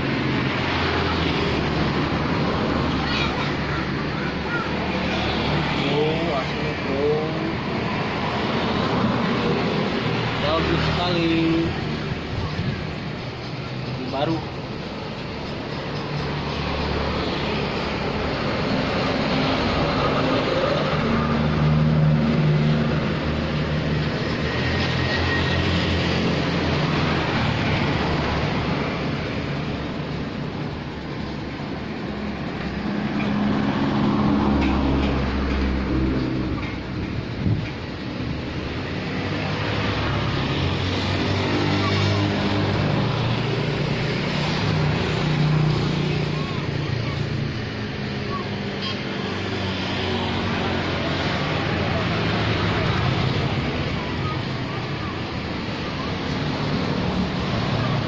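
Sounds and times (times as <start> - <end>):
vehicle engines passing: 0.0 - 58.0.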